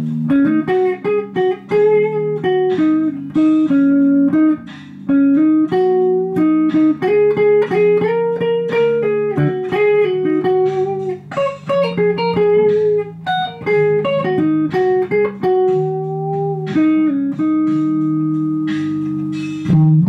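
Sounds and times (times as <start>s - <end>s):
electric guitar blues lead: 0.0s - 20.0s
held backing chords: 0.0s - 20.0s.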